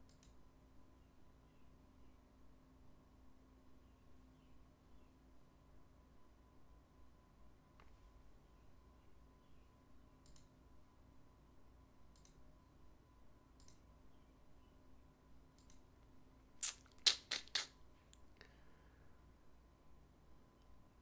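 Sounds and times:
faint steady hum: 0.0 - 21.0
short clicks: 12.1 - 12.4, 13.6 - 13.8, 15.6 - 15.9, 16.6 - 18.3.

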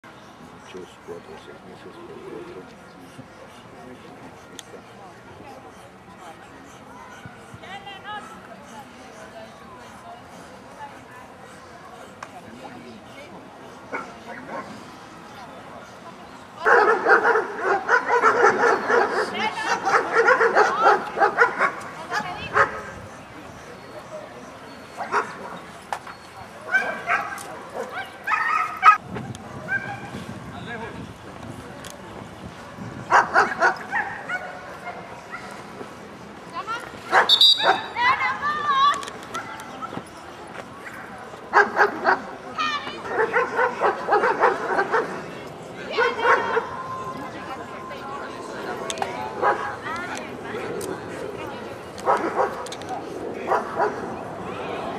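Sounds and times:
dogs barking: 16.6 - 23.0, 24.9 - 25.6, 26.7 - 29.0, 33.1 - 35.5, 37.1 - 37.9, 41.5 - 42.3, 43.1 - 45.2, 45.9 - 46.7, 52.0 - 52.6
voices calling out: 29.6 - 54.9.

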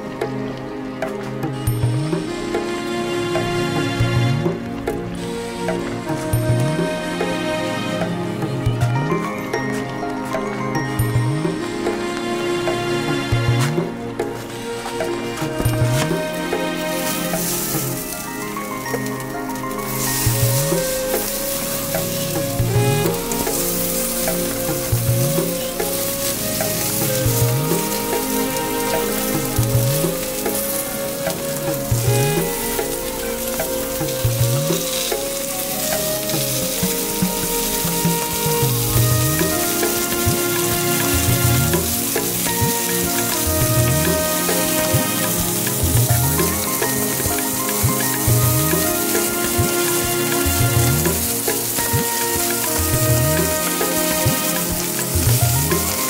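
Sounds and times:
background music with steady beat: 0.0 - 56.0
meat sizzling on charcoal grill: 13.8 - 56.0.

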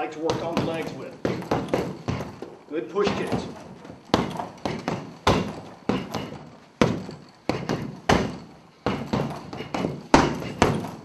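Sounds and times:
punches thudding on heavy bag: 0.0 - 11.0.

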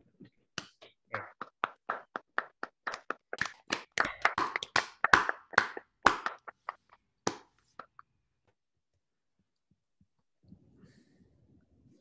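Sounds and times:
scattered hand claps: 0.6 - 8.0.

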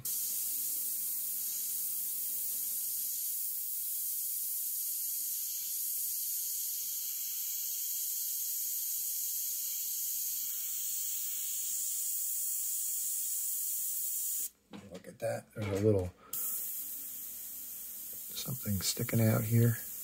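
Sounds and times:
airbrush spraying hiss: 0.0 - 14.5, 16.3 - 20.0.

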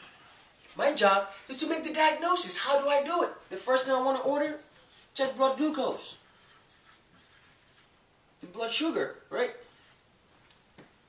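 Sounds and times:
marker scratching on whiteboard: 0.8 - 8.1, 9.5 - 10.1.

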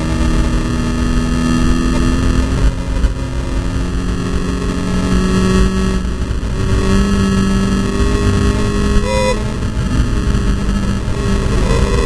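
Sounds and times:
rough road noise: 0.0 - 12.0
wind roar: 0.0 - 12.0.

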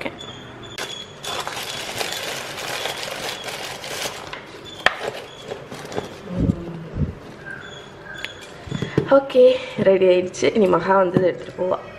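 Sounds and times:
tissue paper rustling: 1.2 - 4.3.

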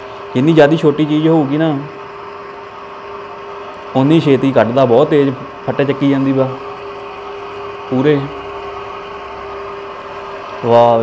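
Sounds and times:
oil press humming: 0.0 - 11.0.

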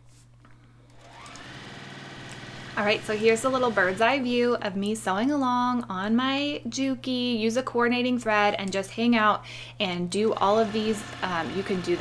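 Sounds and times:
sewing machine motor whine: 0.9 - 4.4, 10.4 - 12.0.

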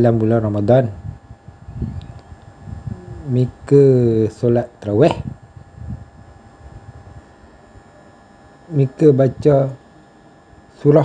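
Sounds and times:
low uneven rumble: 0.0 - 7.4
faint steady hum: 0.0 - 11.0.

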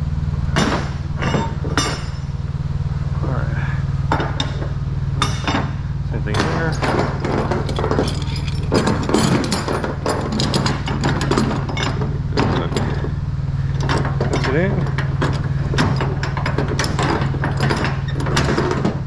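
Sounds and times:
low engine hum: 0.0 - 19.0
steel chain clinking on metal deck: 0.6 - 2.4, 4.1 - 19.0.

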